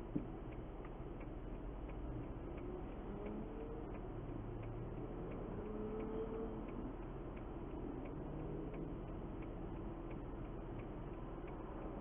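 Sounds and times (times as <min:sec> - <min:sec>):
turn signal ticking: 0:00.0 - 0:12.0.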